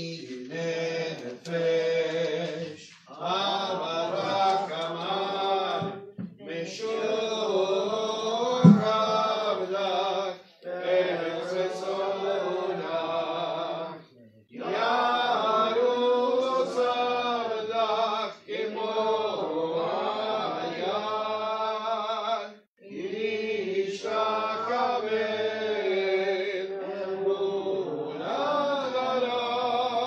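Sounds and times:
man chanting prayer: 0.0 - 14.8.

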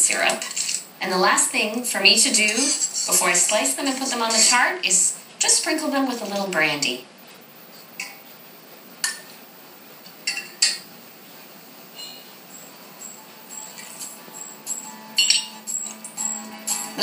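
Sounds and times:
glassware clinking: 10.2 - 10.9, 13.0 - 16.2.

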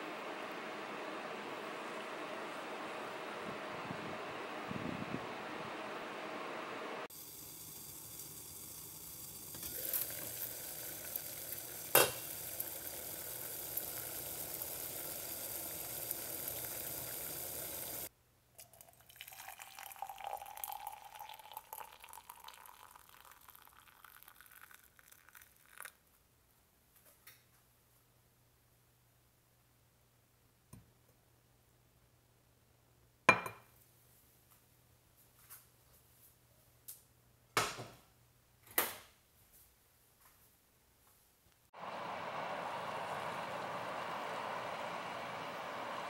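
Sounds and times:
lidded pot boiling: 6.7 - 26.0, 41.8 - 46.0
steam hissing: 7.1 - 18.1, 41.8 - 46.0.

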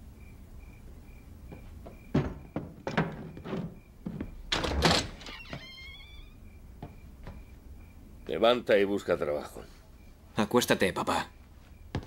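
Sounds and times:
crickets chirping: 0.0 - 12.0
knocks and thuds on door: 1.5 - 5.6
door rattling bang: 2.1 - 5.6
door hinge creak: 4.5 - 6.4.

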